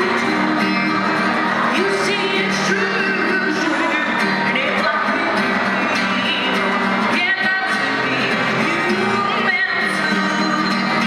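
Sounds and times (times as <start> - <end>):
woman singing into a microphone: 0.0 - 4.0, 5.0 - 11.0
acoustic guitar strumming: 0.0 - 11.0.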